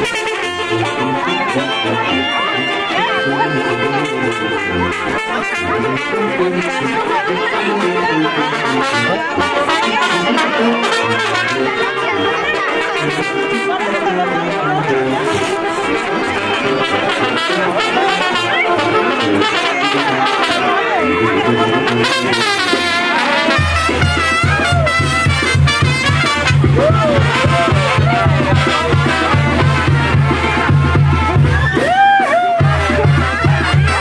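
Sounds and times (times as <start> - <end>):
brass band music: 0.0 - 34.0
crowd chatter: 0.0 - 34.0.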